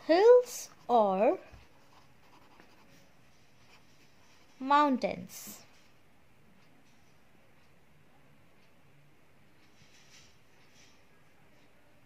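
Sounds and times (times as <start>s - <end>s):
pen writing on paper: 1.9s - 2.9s.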